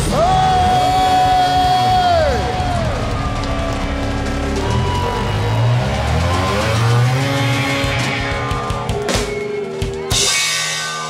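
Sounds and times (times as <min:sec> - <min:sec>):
crowd cheering: 0:00.0 - 0:11.0
live rock band: 0:00.0 - 0:11.0.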